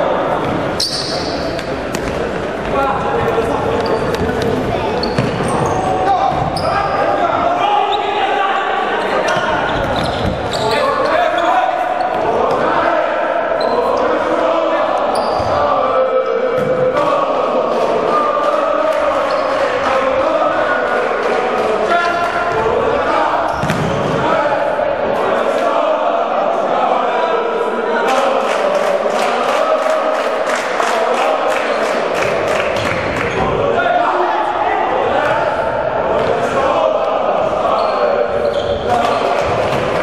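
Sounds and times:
voices: 0.0 - 40.0.

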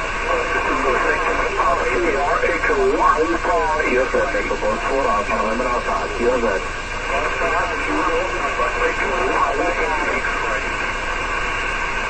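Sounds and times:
radio hiss: 0.0 - 12.0
thin voice over radio speaker: 0.2 - 11.0.

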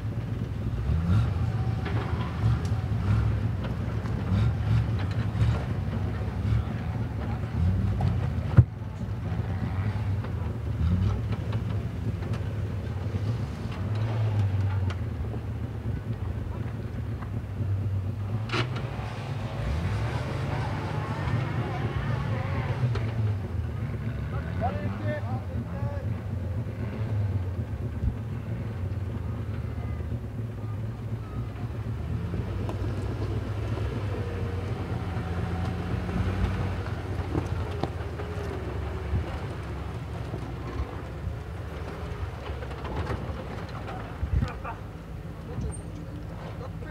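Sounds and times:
vehicle engine revving at low speed: 0.0 - 46.9.

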